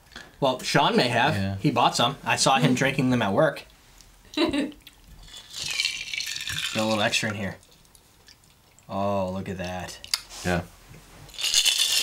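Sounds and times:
ice cubes rattling in a glass jar: 5.2s - 7.4s, 11.3s - 12.0s.

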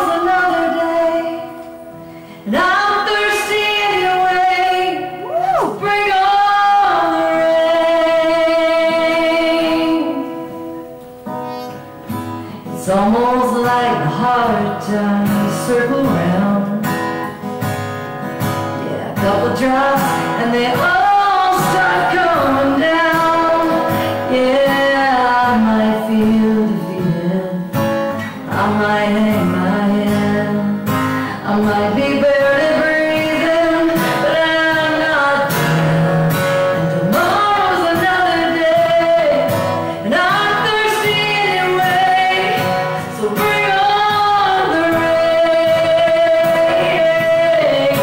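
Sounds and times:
acoustic guitar: 0.0s - 48.0s
woman singing country song: 0.0s - 48.0s.

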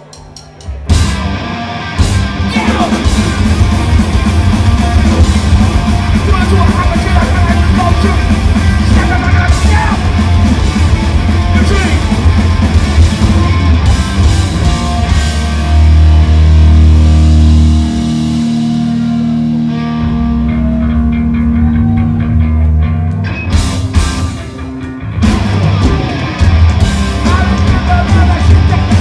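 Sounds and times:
bass guitar: 0.0s - 29.0s
drums: 0.0s - 29.0s
distorted electric guitars: 0.2s - 29.0s.

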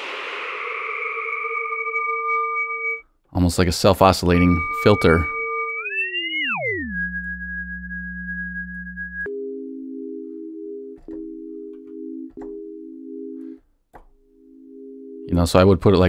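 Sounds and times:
high synthesizer tone: 0.0s - 3.0s, 4.2s - 9.3s
low hum: 0.0s - 3.0s, 4.3s - 10.2s
low synthesizer chord: 4.4s - 13.6s.

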